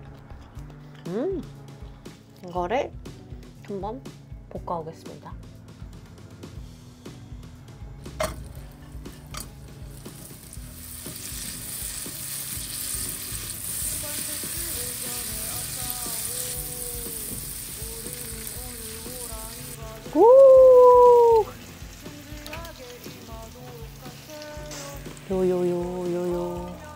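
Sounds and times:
butter sizzling in frying pan: 8.2 - 26.9.

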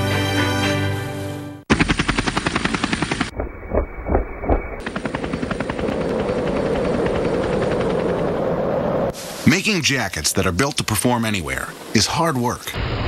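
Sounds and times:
helicopter engine drone: 1.7 - 9.2, 11.6 - 13.0
helicopter rotor chop: 1.7 - 13.0.

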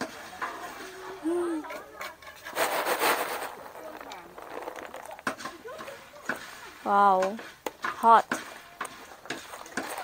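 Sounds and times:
coffee beans rustling on tray: 2.2 - 6.6, 8.8 - 10.0.

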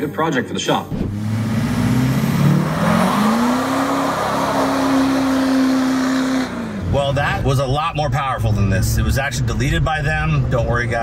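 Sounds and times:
diesel truck engine accelerating: 0.9 - 11.0.

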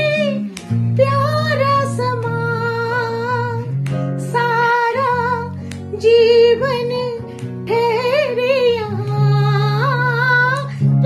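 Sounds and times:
instrumental accompaniment: 0.0 - 11.0
woman singing slow melody: 0.0 - 11.0.

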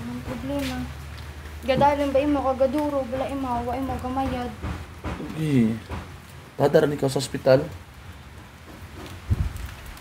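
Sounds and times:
patter of falling water: 0.0 - 10.0.

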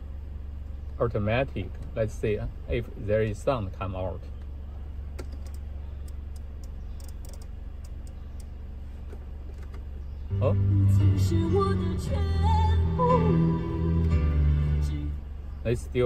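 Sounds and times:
low steady hum: 0.0 - 16.0
light clicks: 5.2 - 8.5
music through car speakers: 10.3 - 15.2.

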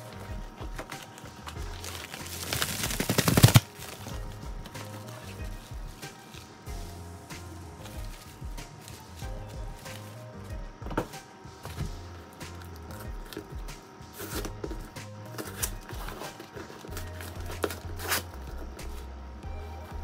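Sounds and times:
cardboard packaging crinkling: 0.0 - 6.6, 7.8 - 10.2, 12.6 - 19.1
background music with bass: 0.0 - 16.3, 16.9 - 20.0.

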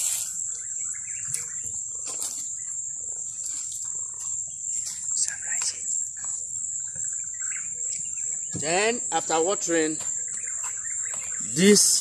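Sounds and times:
faint bird chirps: 0.0 - 12.0
high-pitched insect drone: 0.0 - 12.0.

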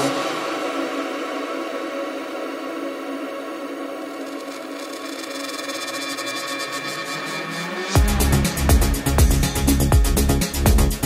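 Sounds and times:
sustained synth chords: 0.0 - 11.0.

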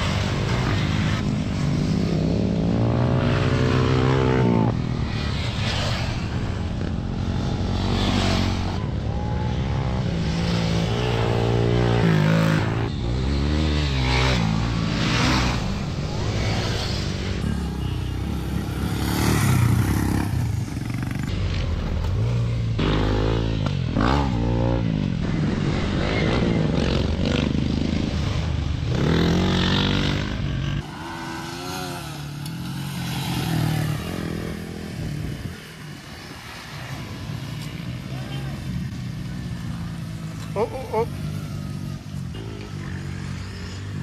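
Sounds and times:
dirt bike engines revving: 0.0 - 44.0.

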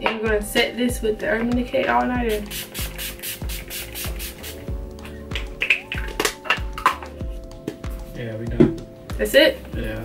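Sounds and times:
background music with held tones: 0.0 - 10.0
spray bottle pump spritzes: 2.3 - 6.1.

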